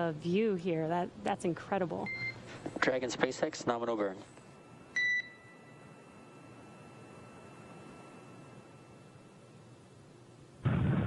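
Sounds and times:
short electronic beep: 5.0 - 5.8.

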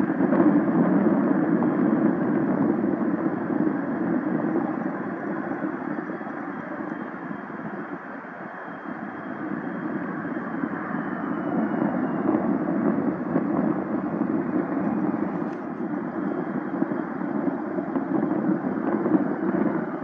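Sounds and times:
high jet whine: 0.0 - 20.0
jet engines rumbling: 0.0 - 20.0.

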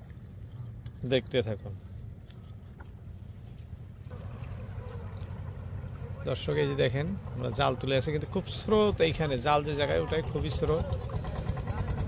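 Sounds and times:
wash of water: 0.0 - 9.8
net hauled over boat side: 0.0 - 12.0
water splashing: 0.0 - 12.0.

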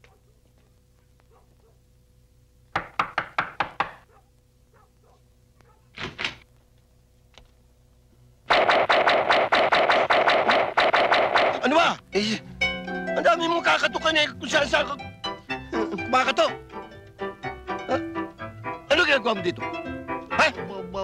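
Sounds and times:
loud fast repeated hits: 8.5 - 11.8.

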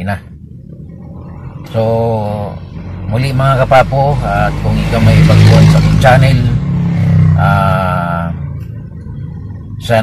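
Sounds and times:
low hum in car cabin: 0.0 - 6.6, 7.4 - 10.0.

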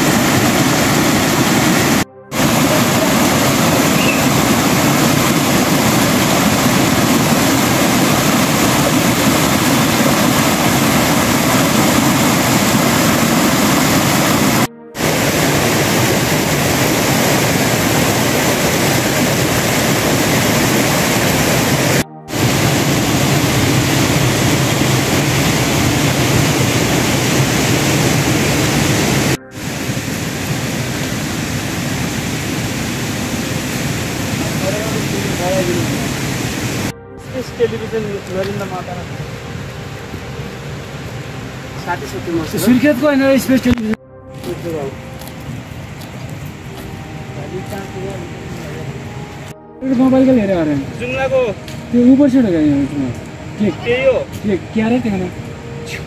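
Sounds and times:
stream rushing over rocks: 0.0 - 56.0.

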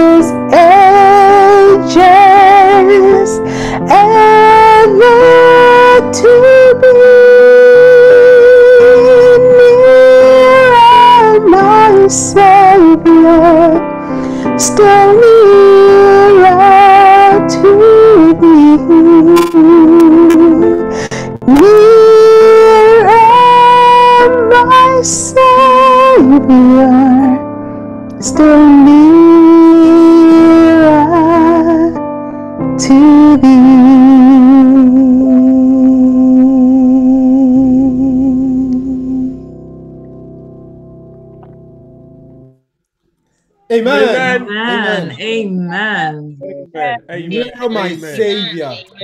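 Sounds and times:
woman singing slow song: 0.0 - 27.4, 28.2 - 32.0, 32.8 - 39.4, 43.8 - 49.0
woman singing a long note: 43.9 - 47.4.

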